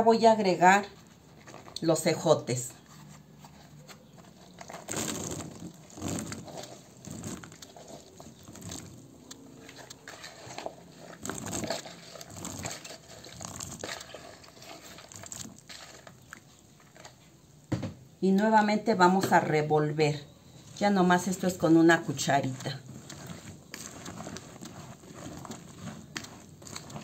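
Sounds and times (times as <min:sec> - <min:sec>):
green beans tipped into batter: 0:04.5 - 0:17.2, 0:22.1 - 0:27.0.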